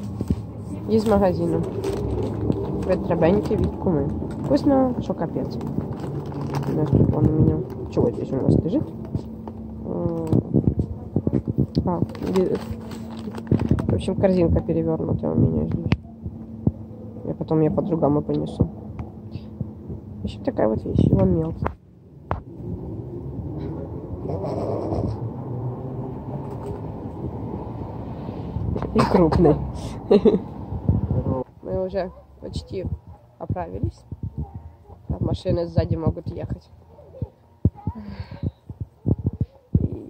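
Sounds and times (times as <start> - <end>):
passing vehicle rumble: 0.0 - 33.1.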